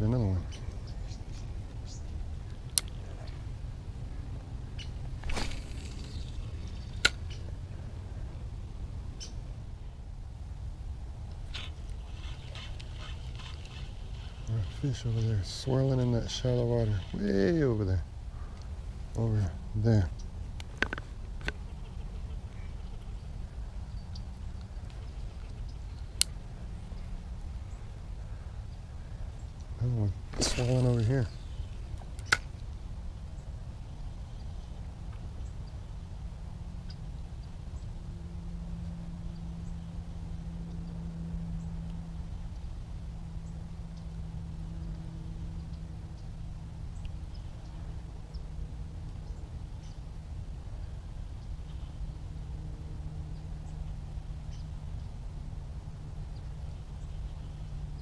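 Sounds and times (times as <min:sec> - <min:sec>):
faint steady hum: 0:00.0 - 0:58.0
wind rumble: 0:00.0 - 0:58.0.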